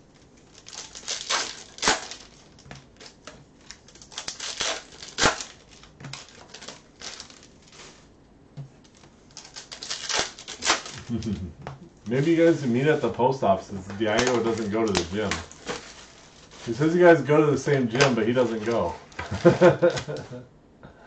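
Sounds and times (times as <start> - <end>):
foil wrappers tearing and crinkling: 0.2 - 8.1, 8.8 - 11.5, 12.1 - 20.3
cards being handled: 13.8 - 16.9, 17.9 - 20.4.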